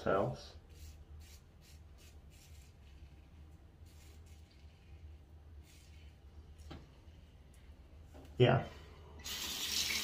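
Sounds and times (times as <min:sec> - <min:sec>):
low steady hum: 0:00.0 - 0:09.3
razor scraping stubble: 0:00.8 - 0:06.3.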